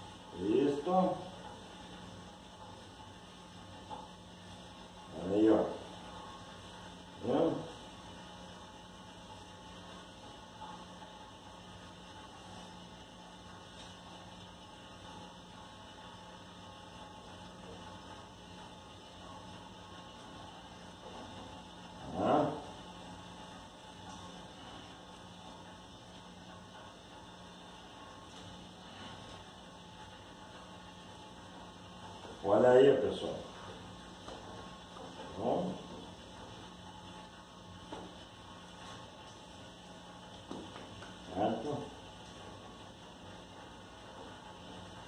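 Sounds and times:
faint room noise: 0.0 - 45.0
low electrical hum: 0.0 - 45.0.

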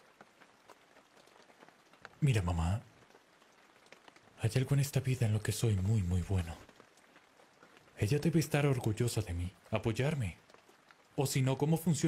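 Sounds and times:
faint rain pattering: 0.0 - 12.0.

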